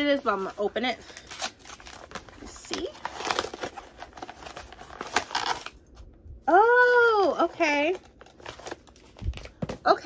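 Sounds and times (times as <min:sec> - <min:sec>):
wrapping rustling and crinkling: 0:00.0 - 0:10.0.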